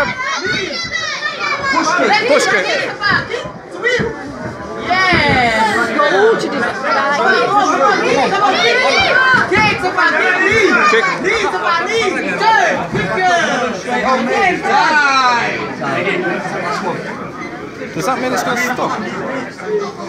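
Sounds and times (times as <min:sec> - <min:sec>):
voices talking and calling out: 0:00.0 - 0:20.0.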